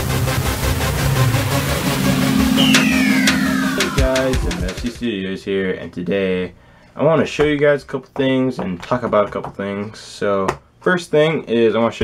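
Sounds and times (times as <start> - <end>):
electronic music with fast beat: 0.0 - 5.1.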